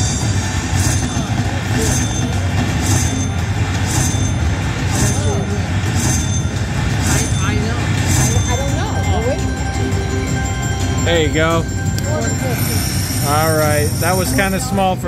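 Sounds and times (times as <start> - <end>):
slot machine payout sounds: 0.0 - 15.0
background chatter: 0.5 - 3.8, 4.7 - 15.0.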